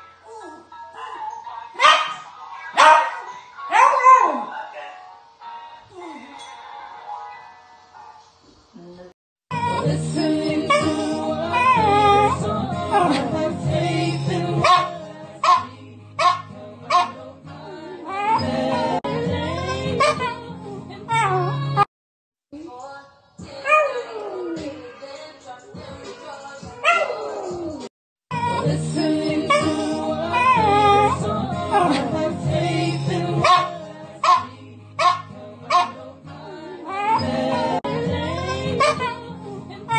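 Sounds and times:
music: 0.0s - 8.2s, 9.5s - 21.9s, 22.6s - 39.9s
dog yipping: 1.0s - 4.5s, 14.6s - 17.2s, 20.0s - 20.4s, 26.8s - 27.6s, 33.4s - 36.0s, 36.9s - 37.4s, 38.8s - 39.1s
dog howling and yipping: 10.7s - 13.2s, 26.8s - 27.8s, 29.4s - 32.0s, 33.4s - 36.0s, 36.9s - 37.8s.

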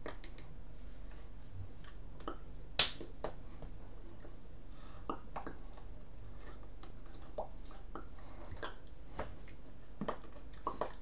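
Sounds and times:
hands slapping: 2.2s - 3.4s.

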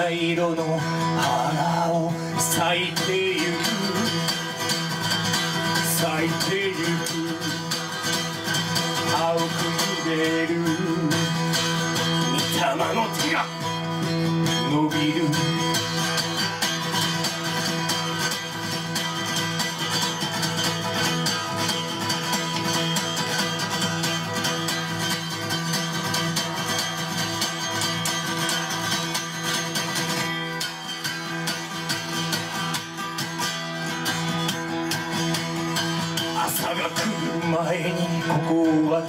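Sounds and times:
acoustic guitar strummed rapidly: 0.0s - 39.0s.

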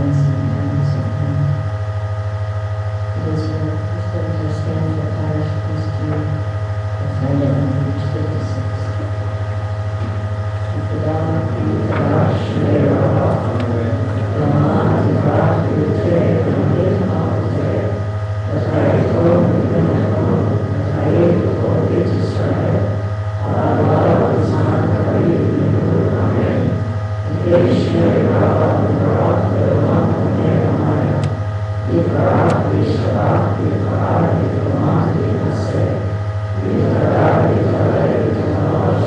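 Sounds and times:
low hum: 0.0s - 39.0s
congregation singing: 10.7s - 39.0s.

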